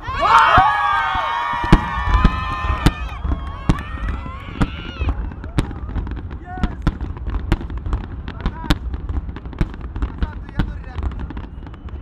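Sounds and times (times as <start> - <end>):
fireworks bangs and pops: 0.0 - 12.0.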